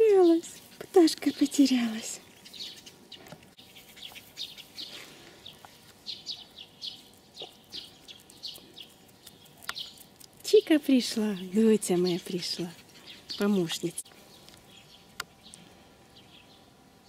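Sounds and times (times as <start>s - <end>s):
small birds chirping: 0.0s - 16.8s.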